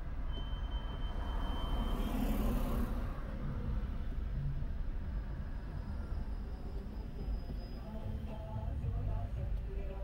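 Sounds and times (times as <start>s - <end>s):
car engine rumble and road noise: 0.0s - 10.0s.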